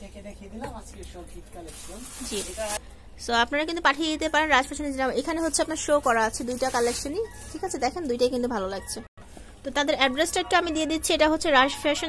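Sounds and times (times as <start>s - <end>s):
cotton garments rustling: 1.2s - 2.8s, 5.2s - 8.2s.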